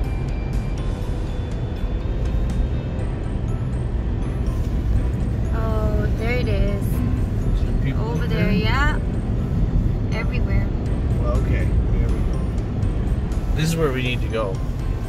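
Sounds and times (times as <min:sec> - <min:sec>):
background music: 0:00.0 - 0:15.0
road and engine rumble in car: 0:00.0 - 0:15.0
person speaking: 0:07.9 - 0:09.0.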